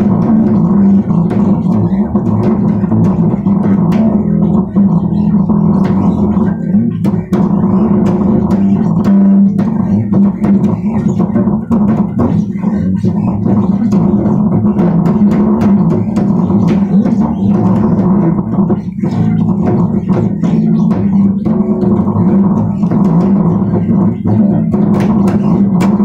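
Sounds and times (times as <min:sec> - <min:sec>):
plucked bass guitar: 0:00.0 - 0:26.0.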